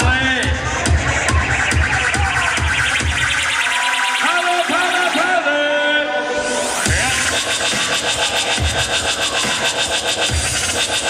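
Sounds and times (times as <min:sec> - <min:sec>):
electronic dance music beat: 0:00.0 - 0:11.0
swooping synthesizer notes: 0:00.0 - 0:11.0.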